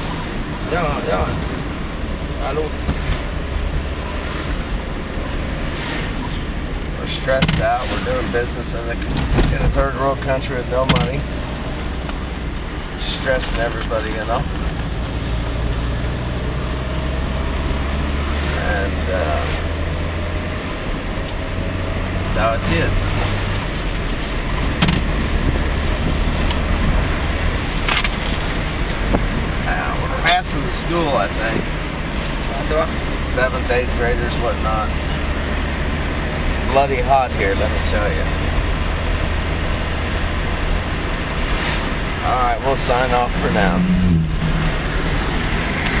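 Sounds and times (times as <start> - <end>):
car engine drone: 0.0 - 46.0.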